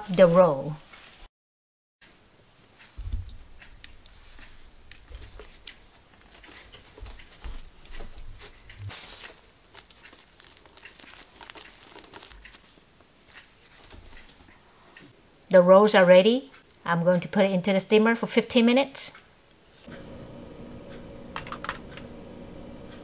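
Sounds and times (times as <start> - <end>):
bean curd sheet crinkling: 3.8 - 14.6.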